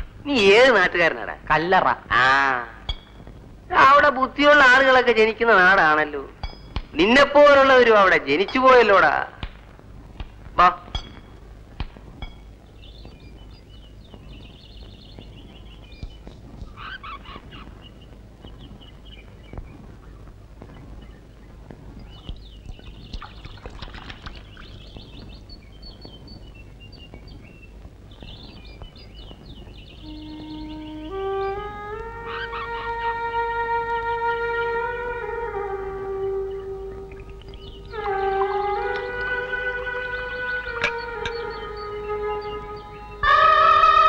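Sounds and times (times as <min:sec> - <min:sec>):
birds chirping and twittering: 0:00.0 - 0:44.0
music with held notes: 0:30.0 - 0:44.0.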